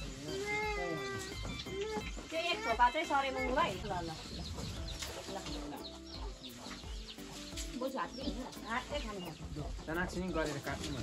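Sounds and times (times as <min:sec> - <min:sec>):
toddler whining cry: 0:00.1 - 0:03.9.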